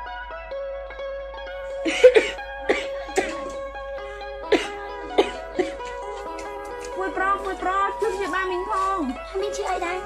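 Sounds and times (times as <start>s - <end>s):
background music with held notes: 0.0s - 10.0s
woman coughing: 1.9s - 3.6s, 4.5s - 5.9s.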